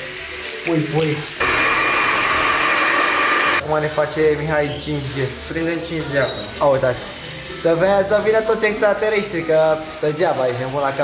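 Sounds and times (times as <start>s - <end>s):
hair dryer blowing with whine: 1.4s - 3.6s.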